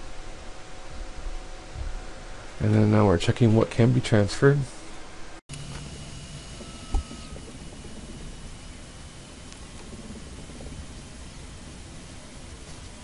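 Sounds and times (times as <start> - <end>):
room noise hiss: 0.0 - 13.0.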